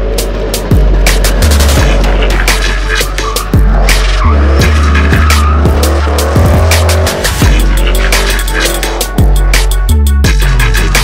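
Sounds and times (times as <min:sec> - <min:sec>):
car engine revving: 0:00.0 - 0:11.0
drum and bass music: 0:00.0 - 0:11.0
tyres squealing: 0:01.2 - 0:09.8.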